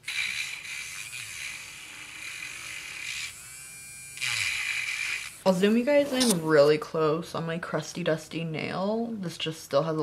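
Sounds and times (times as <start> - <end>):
electric nail drill whining: 0.0 - 6.4.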